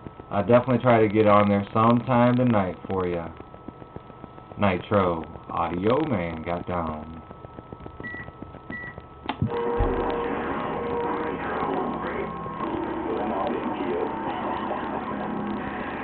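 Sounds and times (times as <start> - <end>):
radio static hiss: 0.0 - 16.0
radio click: 5.2 - 10.3.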